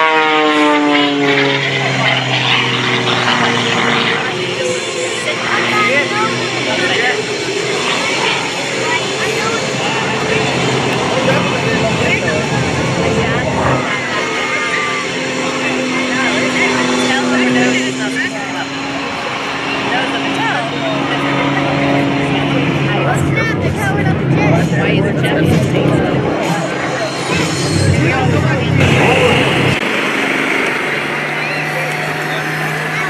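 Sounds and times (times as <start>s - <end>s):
plane engine and propeller droning: 0.0s - 33.0s
spectators talking: 0.0s - 33.0s.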